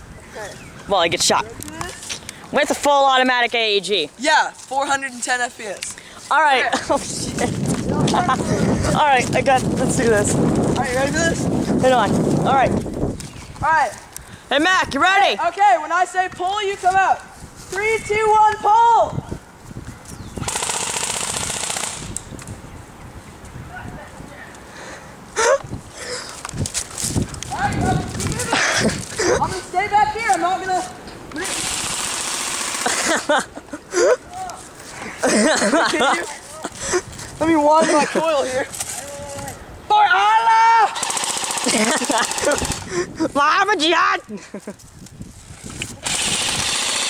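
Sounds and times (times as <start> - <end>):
airsoft gun automatic fire: 20.4 - 22.2, 31.4 - 33.1, 41.0 - 42.8, 46.0 - 47.0
people shouting: 39.0 - 41.2.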